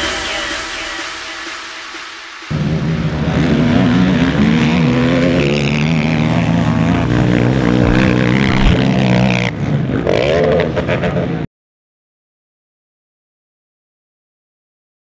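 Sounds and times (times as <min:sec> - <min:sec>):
quad engine revving hard: 0:02.5 - 0:11.4.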